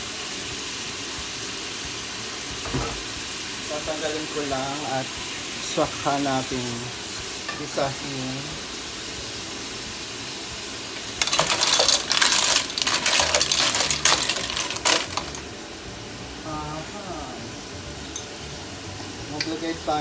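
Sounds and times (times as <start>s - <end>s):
low sizzle from a pot: 0.0s - 20.0s
clam shells clattering: 11.2s - 15.5s.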